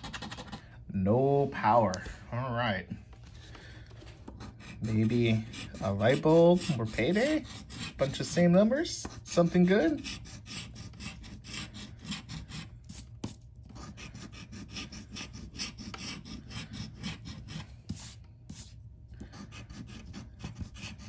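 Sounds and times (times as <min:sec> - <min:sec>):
coin scraping scratch card: 0:00.0 - 0:00.6, 0:09.3 - 0:18.7.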